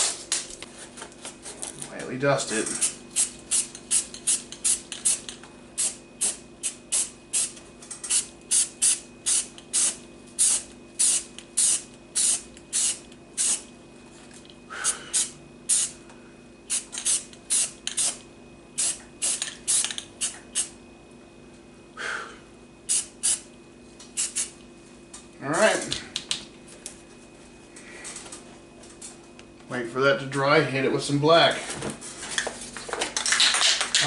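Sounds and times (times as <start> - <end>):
spray paint can hissing: 3.2 - 13.7, 15.2 - 15.9, 16.7 - 18.2, 18.8 - 20.7, 24.2 - 24.5.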